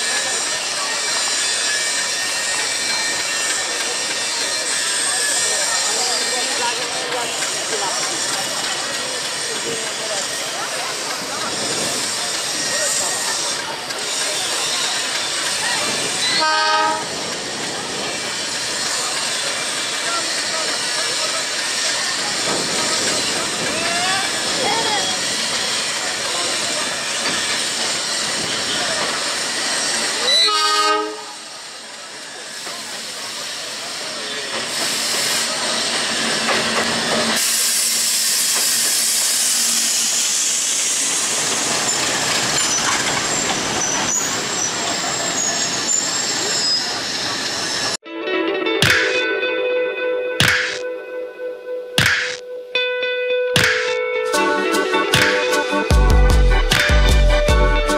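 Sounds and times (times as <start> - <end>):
train running: 0.0 - 48.0, 53.6 - 57.9
busy station noise: 0.0 - 57.9
locomotive horn blasts: 16.3 - 17.2, 30.3 - 31.5.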